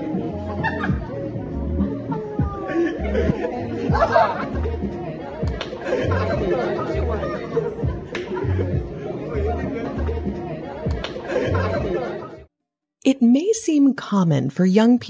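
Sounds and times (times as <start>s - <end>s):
music with steady bass beat: 0.0s - 12.2s
people chattering and laughing: 0.0s - 12.5s.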